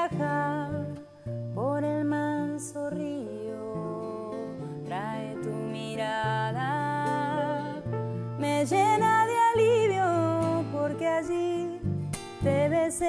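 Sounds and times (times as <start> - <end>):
acoustic guitar: 0.0 - 13.0
woman singing: 0.0 - 13.0.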